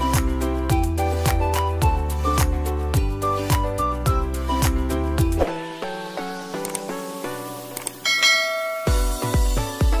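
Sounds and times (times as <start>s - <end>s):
bell-like notification chime: 8.0s - 9.4s.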